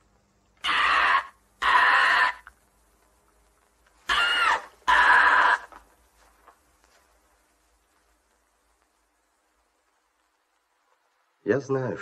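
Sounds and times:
bird screeching: 0:00.6 - 0:02.5, 0:04.1 - 0:05.7.

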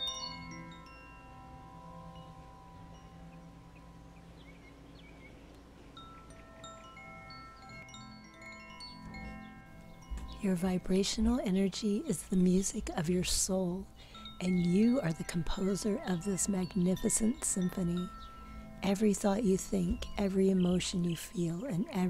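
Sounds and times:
soft meditation music: 0:00.0 - 0:22.0.

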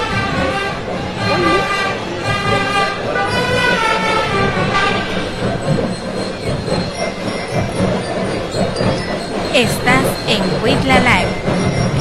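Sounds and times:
marching band playing: 0:00.0 - 0:06.8.

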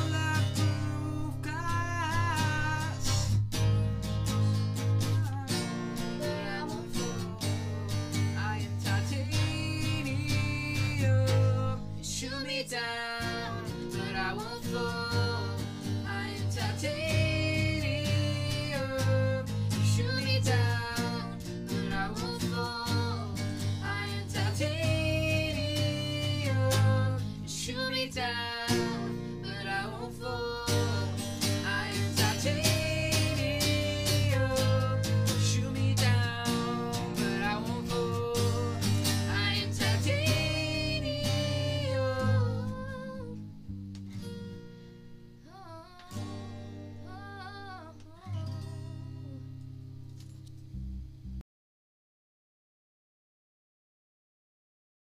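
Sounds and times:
strummed acoustic guitar: 0:00.0 - 0:51.3
woman singing with vibrato: 0:05.1 - 0:43.4, 0:45.5 - 0:46.4, 0:47.0 - 0:49.5.

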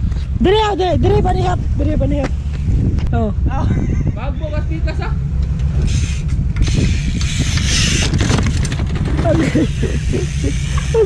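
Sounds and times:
wind rumble on microphone: 0:00.0 - 0:11.0
bike tyre hiss on concrete: 0:05.8 - 0:07.6, 0:09.7 - 0:11.0.

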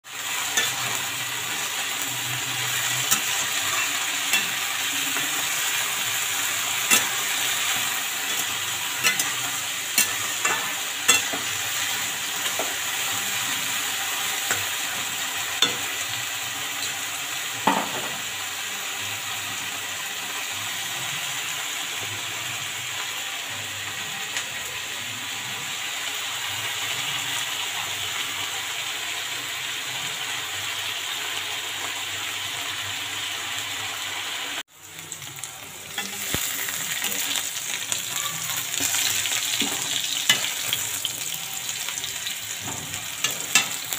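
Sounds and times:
vegetables sizzling in oil: 0:00.0 - 0:43.9
metal spatula scraping pan: 0:00.3 - 0:16.1, 0:38.7 - 0:43.9.

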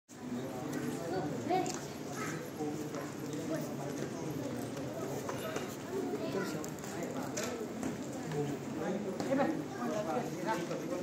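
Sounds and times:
people talking indistinctly: 0:00.2 - 0:11.0.

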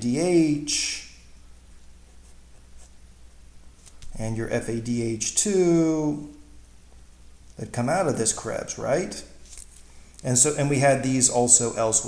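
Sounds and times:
steady low hum: 0:00.0 - 0:12.0
marker pen writing on paper: 0:02.0 - 0:03.0.

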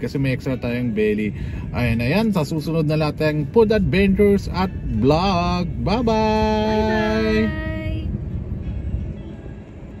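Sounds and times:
car engine rumble: 0:00.0 - 0:10.0
road noise: 0:00.0 - 0:10.0.

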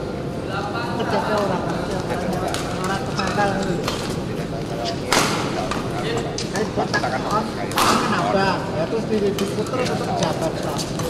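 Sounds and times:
voices talking: 0:00.4 - 0:11.0.

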